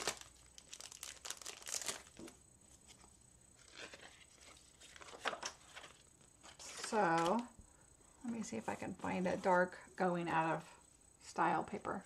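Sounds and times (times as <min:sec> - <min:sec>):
plastic packaging crinkling: 0:00.0 - 0:07.5.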